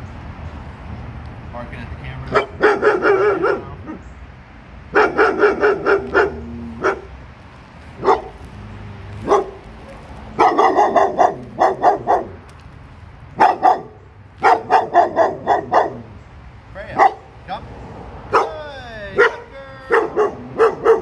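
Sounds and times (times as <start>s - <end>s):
dog barking: 2.3s - 4.0s, 4.9s - 7.1s, 8.0s - 8.4s, 9.2s - 12.4s, 13.4s - 16.1s, 17.0s - 17.3s, 18.3s - 18.6s, 19.2s - 21.0s.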